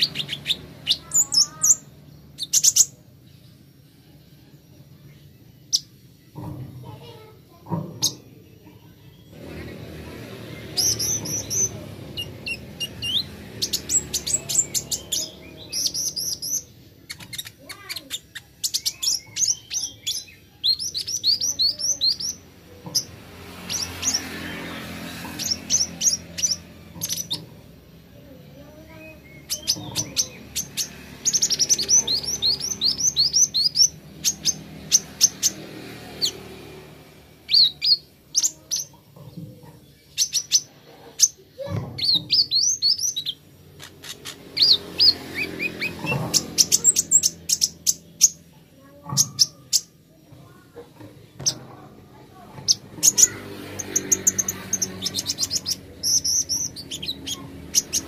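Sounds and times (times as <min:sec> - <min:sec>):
sunbird singing high thin chirps: 0:00.0 - 0:03.0, 0:10.5 - 0:27.4, 0:28.6 - 0:36.6, 0:37.4 - 0:39.0, 0:40.0 - 0:50.0, 0:52.1 - 0:58.0.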